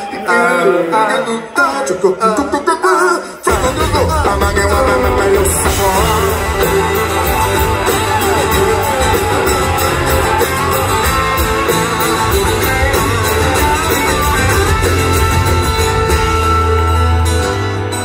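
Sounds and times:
rock guitars with bending leads: 3.4s - 18.0s
steady drum beat: 3.5s - 17.4s
bass guitar: 3.5s - 18.0s.

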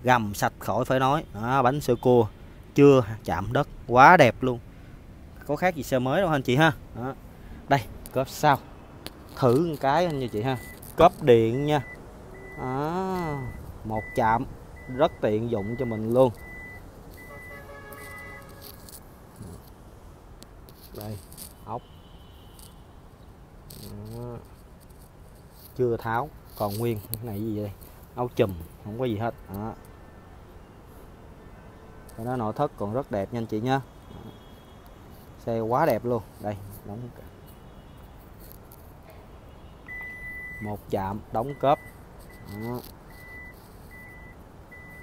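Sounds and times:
faint background noise: 0.0s - 45.0s
handling noise: 9.0s - 14.1s, 14.7s - 19.8s
high warning beep: 10.1s - 10.8s, 11.5s - 18.4s, 39.9s - 40.7s, 41.4s - 45.0s
short high warning beep: 14.8s - 18.4s, 39.9s - 40.6s.

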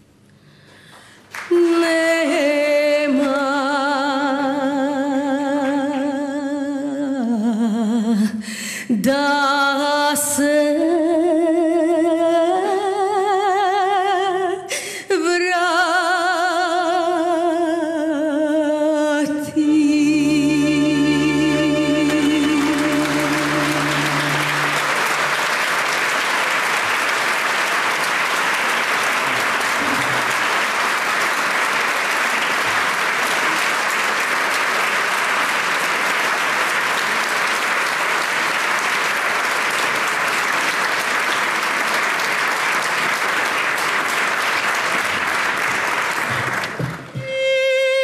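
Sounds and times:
audience applauding: 0.9s - 2.4s, 20.2s - 47.6s
held musical note: 19.8s - 26.4s.

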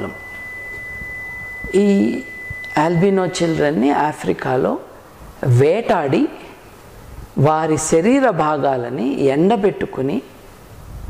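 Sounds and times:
high-pitched pure tone: 0.0s - 7.2s
faint background hiss: 0.0s - 11.0s.

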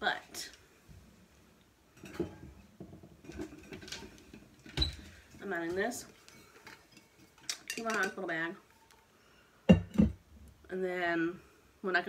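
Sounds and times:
objects knocking and tapping: 2.0s - 9.0s, 9.7s - 10.2s.

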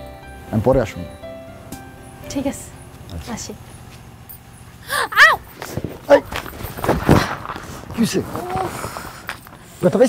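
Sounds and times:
scuffling of feet and bodies: 2.9s - 10.0s
short cries: 4.8s - 5.5s.

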